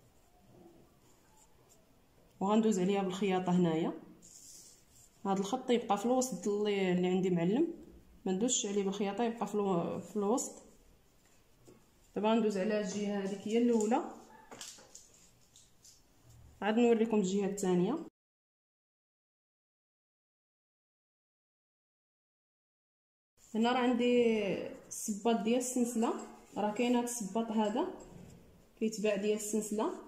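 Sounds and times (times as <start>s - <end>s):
woman speaking: 2.4s - 4.1s, 5.2s - 10.7s, 12.2s - 14.2s, 16.6s - 18.1s, 23.5s - 28.1s, 28.8s - 30.0s
cloth rustling: 4.2s - 5.3s.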